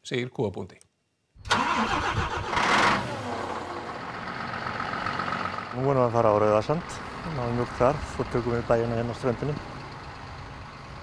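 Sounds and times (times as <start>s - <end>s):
engine rushing burst: 1.4s - 5.7s
diesel truck engine running: 1.5s - 11.0s.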